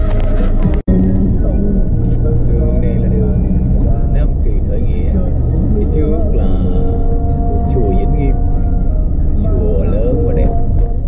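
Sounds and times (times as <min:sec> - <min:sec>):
car cabin rumble: 0:00.0 - 0:11.0
person talking or singing: 0:01.1 - 0:10.9.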